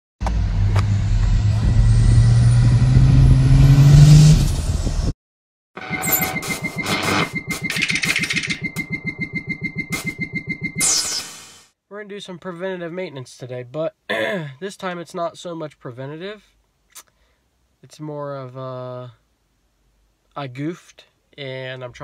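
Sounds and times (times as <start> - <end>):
truck engine accelerating: 0.2 - 5.1.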